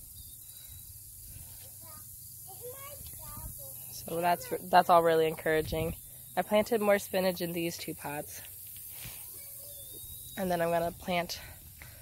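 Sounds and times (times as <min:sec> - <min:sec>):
wind rumble on microphone: 0:05.4 - 0:06.0.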